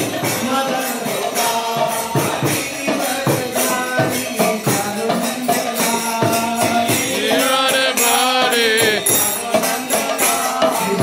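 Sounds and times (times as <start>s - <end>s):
light jingling percussion: 0.0s - 11.0s
person chanting a mantra: 7.1s - 9.2s.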